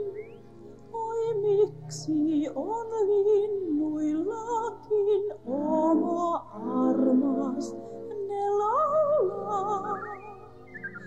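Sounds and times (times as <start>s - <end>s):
musical accompaniment: 0.0s - 11.0s.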